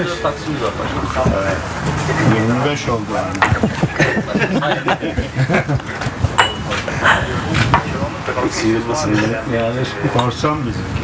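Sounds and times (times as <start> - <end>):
men laughing and talking: 0.0 - 10.8.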